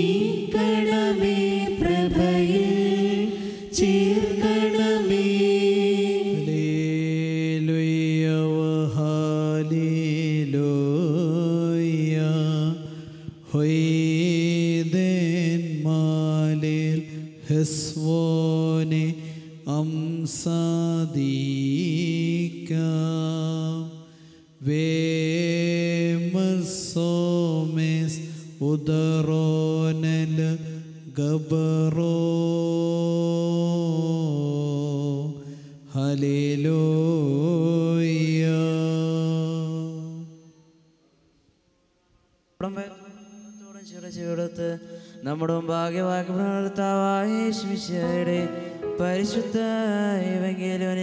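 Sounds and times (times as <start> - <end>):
man chanting through a microphone: 6.4 - 24.0.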